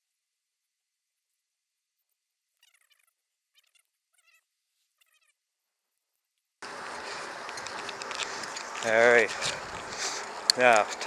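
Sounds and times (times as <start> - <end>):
bicycle road noise: 6.6 - 11.0.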